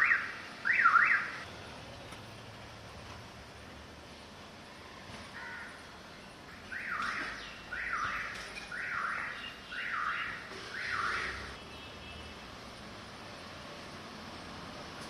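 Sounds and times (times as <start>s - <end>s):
bird calling: 6.6s - 11.9s.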